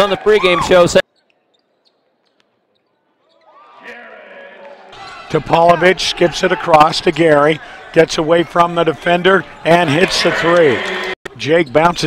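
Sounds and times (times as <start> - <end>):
sneakers squeaking on hardwood: 1.1 - 3.6.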